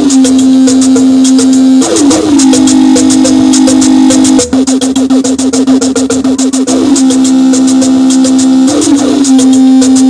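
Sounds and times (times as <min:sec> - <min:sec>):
live electronic music: 0:00.0 - 0:10.0.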